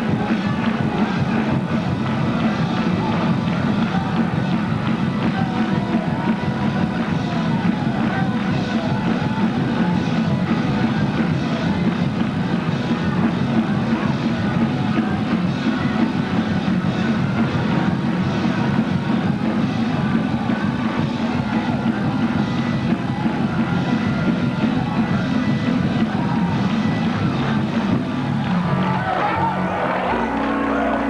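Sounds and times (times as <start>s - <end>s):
drum kit: 0.0s - 31.0s
fast church band music: 0.0s - 31.0s.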